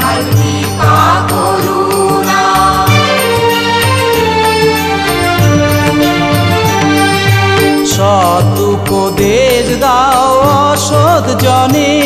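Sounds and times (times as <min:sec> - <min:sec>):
wavering melody: 0:00.0 - 0:08.2
steady drum beat: 0:00.0 - 0:09.8.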